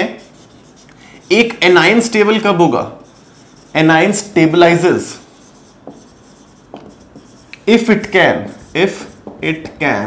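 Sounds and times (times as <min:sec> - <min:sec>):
marker pen writing on whiteboard: 0:00.0 - 0:10.0
man speaking: 0:07.6 - 0:10.0.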